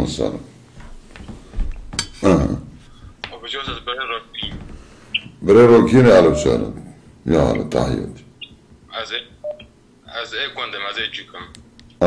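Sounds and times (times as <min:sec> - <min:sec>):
voice through phone loudspeaker: 0:03.3 - 0:04.7, 0:05.5 - 0:06.8
brief beep tone: 0:06.2 - 0:06.6, 0:09.4 - 0:09.6.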